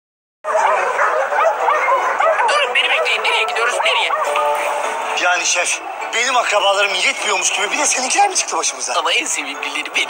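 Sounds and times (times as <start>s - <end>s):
dogs barking and yipping: 0.4s - 4.9s.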